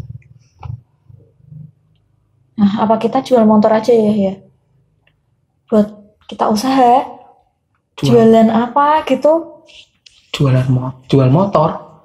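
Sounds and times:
person humming or grunting: 0:08.0 - 0:08.3.

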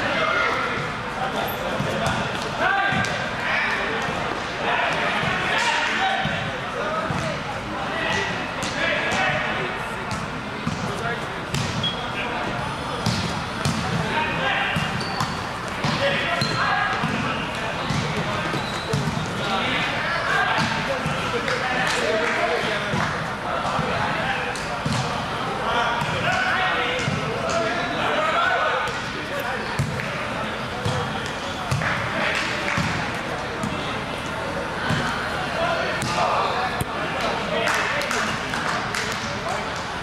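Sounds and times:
hubbub of voices: 0:00.0 - 0:40.0
volleyball being hit and bouncing: 0:10.1 - 0:12.0, 0:13.0 - 0:14.1, 0:14.7 - 0:19.3, 0:22.8 - 0:25.2, 0:30.8 - 0:33.9, 0:35.9 - 0:39.5.

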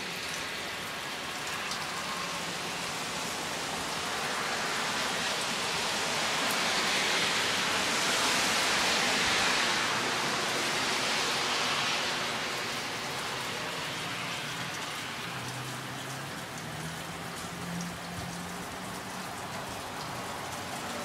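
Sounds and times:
rain on roofs and pavement: 0:00.0 - 0:21.0.

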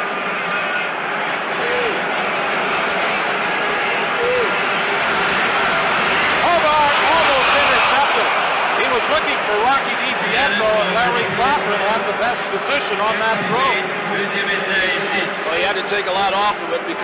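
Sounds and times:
crowd shouts: 0:00.0 - 0:17.0
stadium crowd din: 0:00.0 - 0:17.0.

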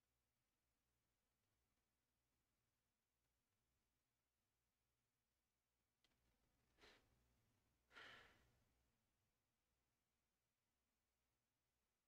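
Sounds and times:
faint breathy exhale: 0:07.9 - 0:08.5.

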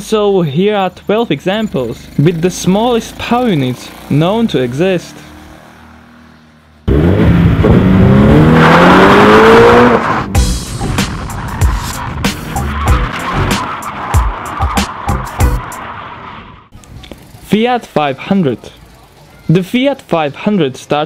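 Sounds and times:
car engine revving: 0:02.0 - 0:16.8
music with sharp repeated hits: 0:10.4 - 0:15.7.

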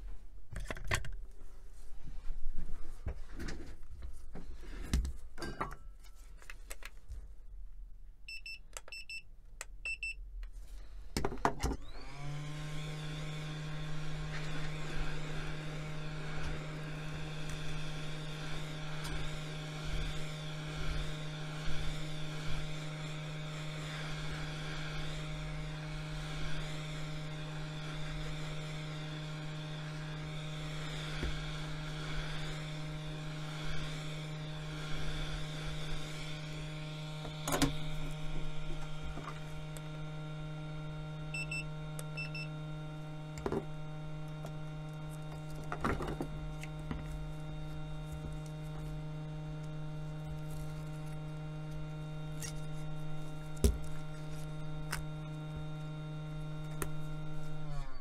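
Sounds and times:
heat gun humming: 0:11.8 - 0:58.0.

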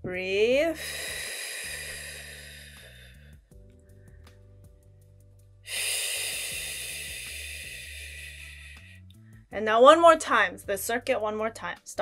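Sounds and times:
calm music with low chords: 0:00.0 - 0:12.0
long breaths out through mouth: 0:00.8 - 0:04.4, 0:05.7 - 0:09.5.

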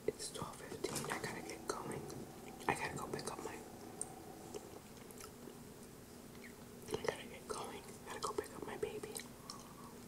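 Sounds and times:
close chewing mouth clicks: 0:04.0 - 0:07.2, 0:07.8 - 0:10.0.

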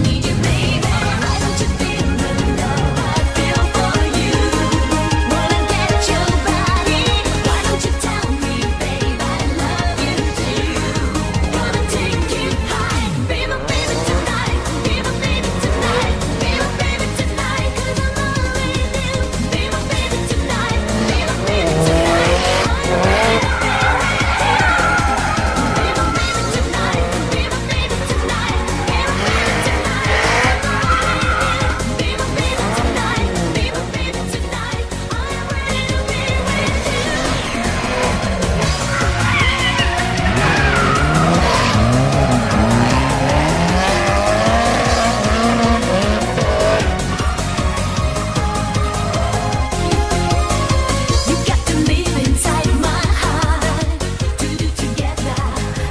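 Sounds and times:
background music with steady beat: 0:00.0 - 0:55.9
car engine revving: 0:00.0 - 0:55.9
tyres squealing: 0:19.6 - 0:47.0.

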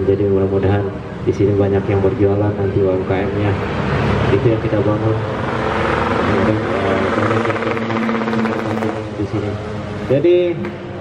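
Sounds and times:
vehicle engine passing: 0:02.9 - 0:11.0
voices: 0:04.3 - 0:10.8.

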